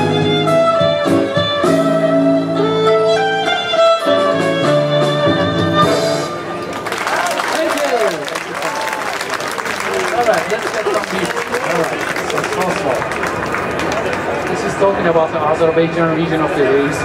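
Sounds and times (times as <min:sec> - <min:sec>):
audience applauding: 0:06.6 - 0:14.6.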